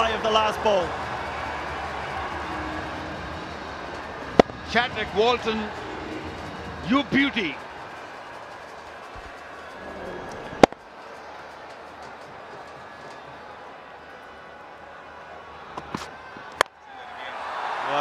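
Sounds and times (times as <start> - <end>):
stadium crowd noise: 0.0 - 18.0
bat striking ball: 4.4 - 4.6.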